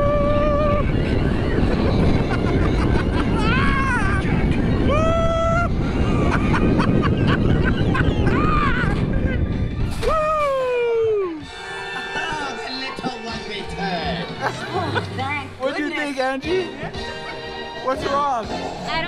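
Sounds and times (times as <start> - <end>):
riders whooping and screaming: 0.0 - 12.3
rushing wind: 0.0 - 15.9
music with held tones: 11.4 - 19.0.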